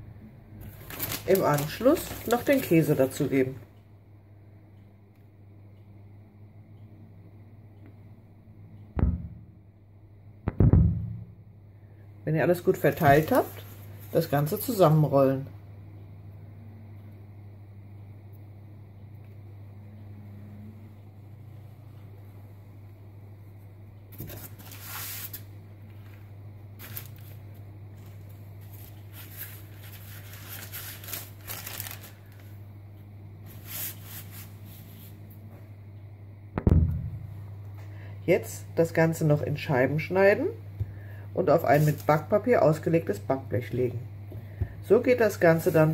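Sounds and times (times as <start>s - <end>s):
faint low hum: 0.0s - 45.9s
baking paper rustling and crinkling: 0.6s - 3.6s, 12.8s - 14.7s, 24.2s - 26.2s, 26.8s - 32.5s, 33.5s - 35.2s, 41.5s - 42.5s
loud thump: 9.0s - 9.5s, 10.5s - 11.3s, 36.6s - 37.3s.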